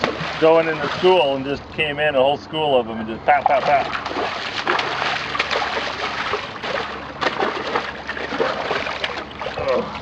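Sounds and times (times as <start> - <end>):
stingray thrashing in water: 0.0 - 1.3, 3.6 - 10.0.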